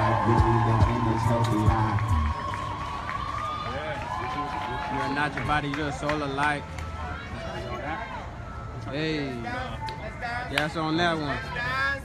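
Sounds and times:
people talking: 0.0s - 2.0s.

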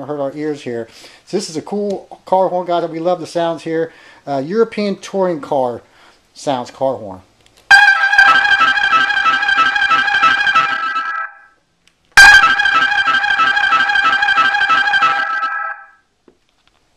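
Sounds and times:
musical car horn playing tune: 7.7s - 11.4s, 12.2s - 16.0s.

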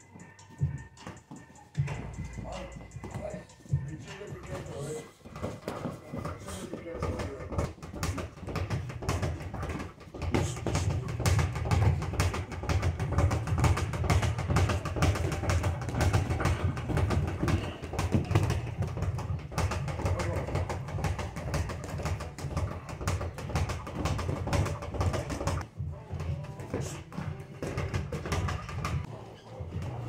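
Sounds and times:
knocks and thuds of gloves: 2.9s - 29.1s.

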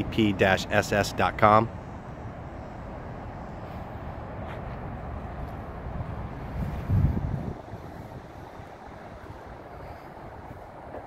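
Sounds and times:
low outdoor rumble: 0.0s - 11.0s
wind buffeting microphone: 1.7s - 11.0s.

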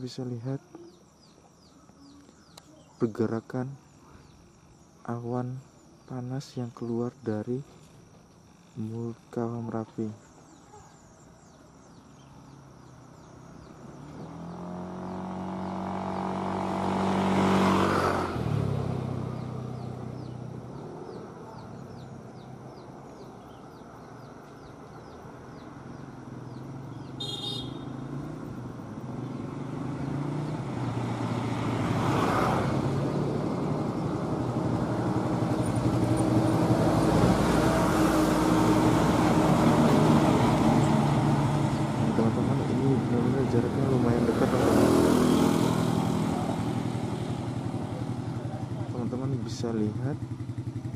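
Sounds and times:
vehicles passing close by: 0.0s - 50.9s
short horn toot: 27.2s - 27.9s.

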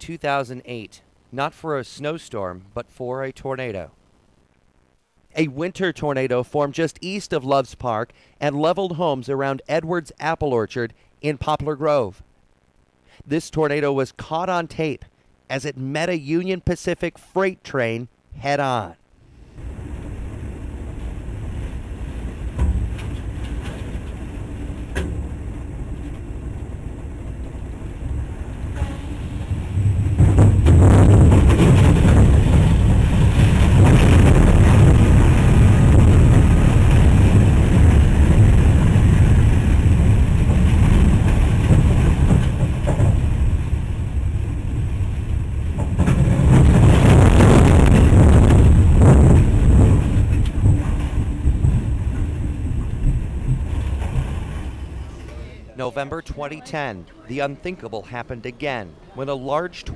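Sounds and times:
wind buffeting locomotive cab: 19.6s - 55.8s.

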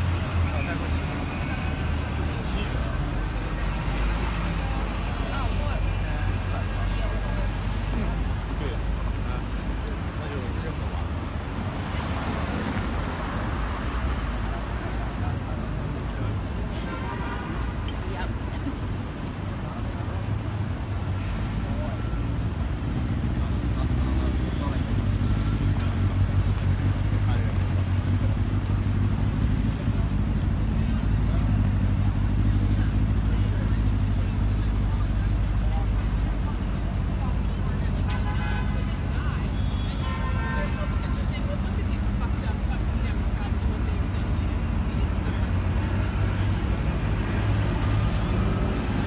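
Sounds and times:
passers-by talking: 0.0s - 49.0s
road traffic rumble: 0.0s - 49.0s.

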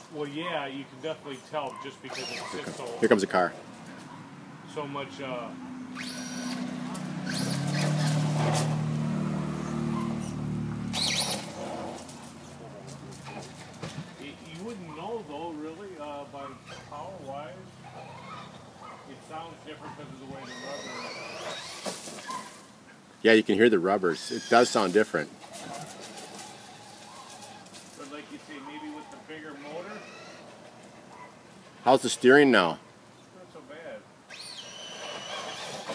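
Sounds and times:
rc truck driving on asphalt: 1.8s - 4.1s, 4.9s - 14.7s, 16.4s - 22.7s, 24.1s - 31.2s, 34.3s - 35.9s
electric motor whine: 5.9s - 11.9s.

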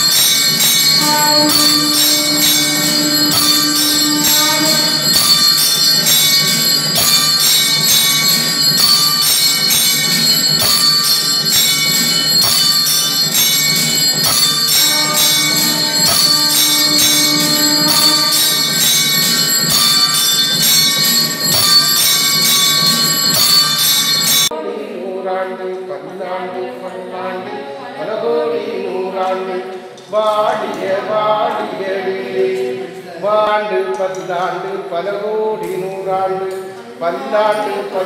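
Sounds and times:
temple bells clanging rapidly: 0.0s - 24.5s.

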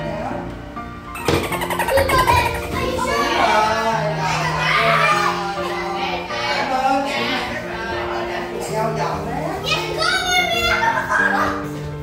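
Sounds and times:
background music: 0.0s - 12.0s
children calling and shouting: 1.2s - 8.8s, 9.6s - 12.0s.

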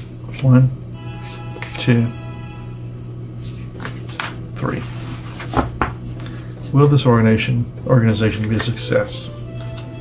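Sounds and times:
cards rustling and tapping: 3.3s - 6.8s, 8.2s - 9.0s.

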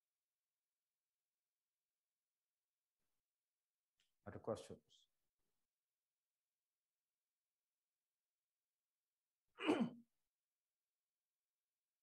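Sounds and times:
person sighing: 9.6s - 10.0s.

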